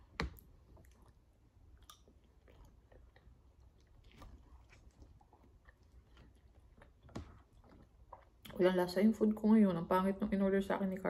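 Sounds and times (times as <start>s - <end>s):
chewing rice: 0.7s - 8.5s.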